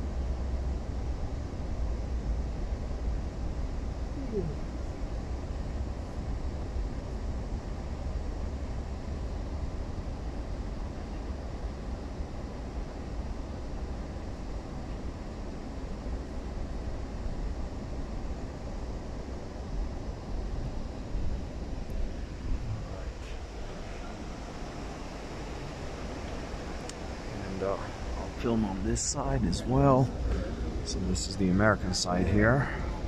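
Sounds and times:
train car rumble: 0:00.0 - 0:33.0.

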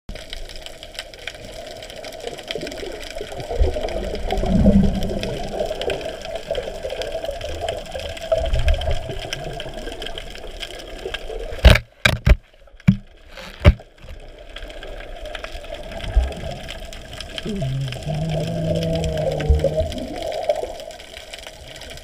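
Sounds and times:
faint crackling ticks: 0:00.1 - 0:11.8, 0:12.4 - 0:22.0
low muffled rumble: 0:17.2 - 0:20.2.

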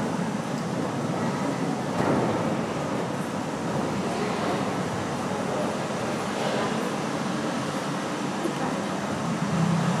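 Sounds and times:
sea waves over speakers: 0:00.0 - 0:10.0.

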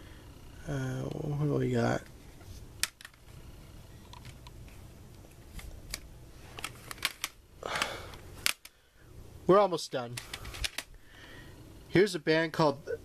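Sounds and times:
plastic cd cases clicking: 0:02.8 - 0:03.3, 0:04.0 - 0:08.8, 0:10.1 - 0:10.9.

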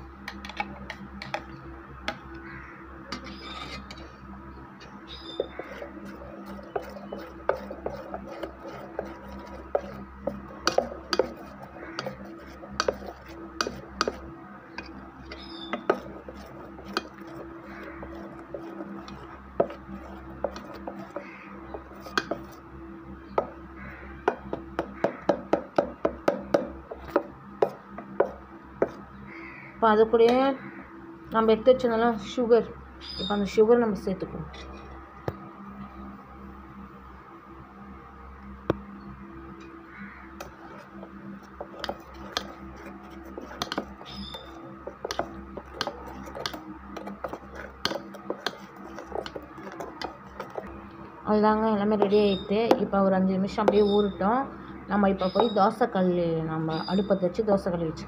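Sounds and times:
steady low hum: 0:00.0 - 0:58.0
utensil knocking against vessel: 0:24.3 - 0:29.0.

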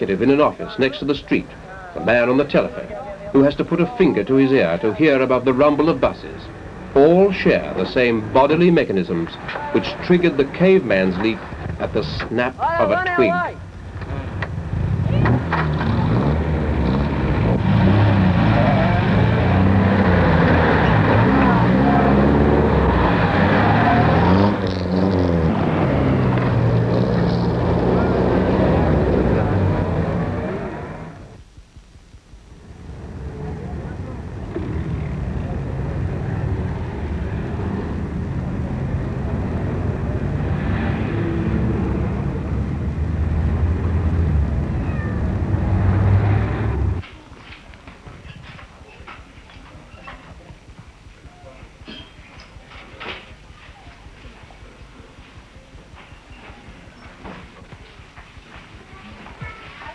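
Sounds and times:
car and truck engines: 0:00.0 - 0:31.4, 0:32.6 - 0:47.0
voices: 0:00.0 - 0:31.4, 0:32.6 - 0:43.0, 0:43.7 - 0:59.9.

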